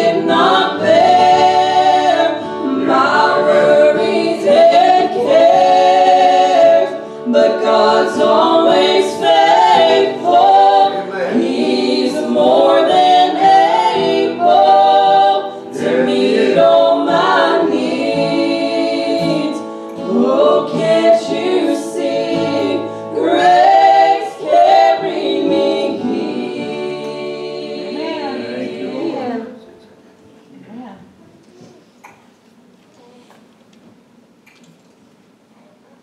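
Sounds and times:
vocal group singing in harmony: 0.0s - 29.6s.

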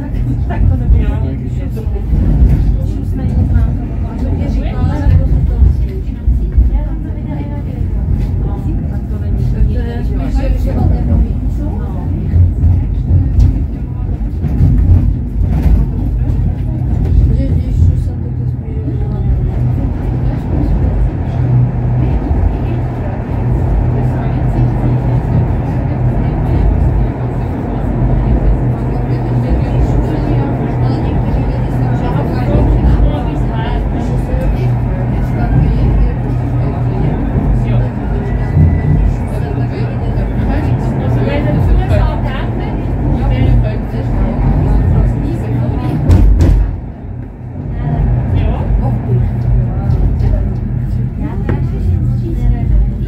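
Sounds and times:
railcar rumbling on track: 0.0s - 53.0s
steady hum: 0.0s - 53.0s
voices talking: 0.0s - 53.0s.

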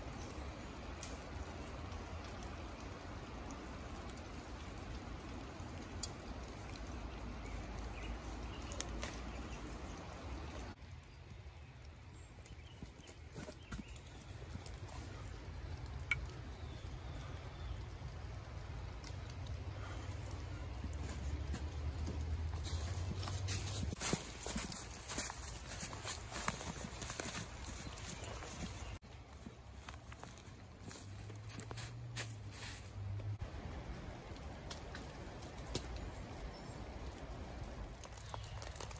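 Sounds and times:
footsteps crunching snow and leaves: 21.0s - 33.0s.

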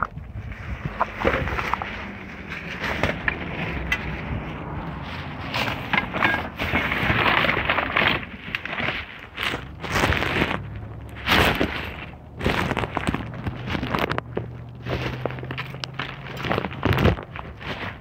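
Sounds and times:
items knocking and clattering: 0.0s - 4.5s, 5.4s - 18.0s
plastic crinkling and rustling: 0.0s - 18.0s.

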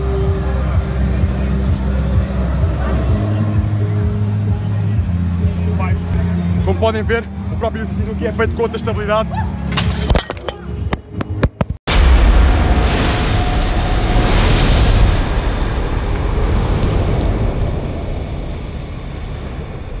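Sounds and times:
cinematic boom with rumble: 11.9s - 20.0s.

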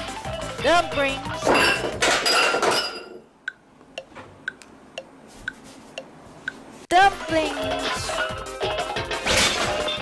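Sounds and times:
background music: 0.0s - 2.1s, 6.9s - 10.0s
loud clattering crash: 9.2s - 10.0s.

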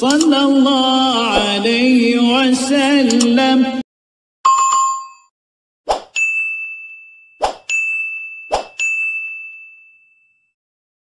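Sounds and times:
bright metallic dings ringing: 6.2s - 10.6s.

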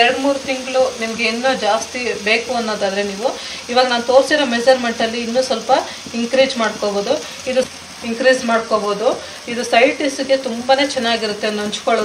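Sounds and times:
food sizzling in a pan: 0.0s - 12.0s.

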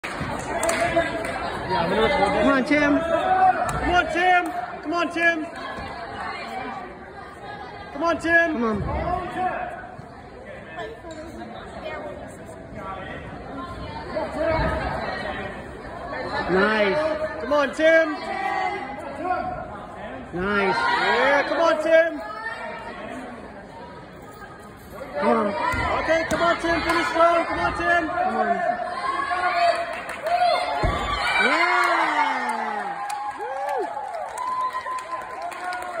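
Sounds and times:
faint claps: 0.0s - 1.4s
people talking in echoing hall: 0.0s - 36.0s
spectators cheering and whooping: 30.2s - 36.0s.

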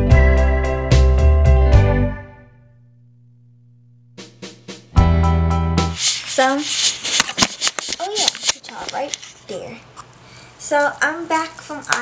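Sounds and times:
rustling and handling noise: 5.9s - 12.0s.

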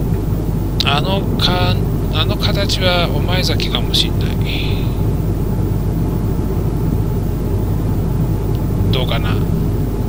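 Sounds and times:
airliner cabin low rumble: 0.0s - 10.0s.

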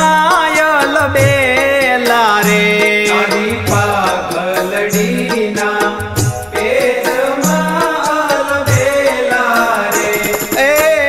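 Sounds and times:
devotional music with percussion: 0.0s - 11.0s.

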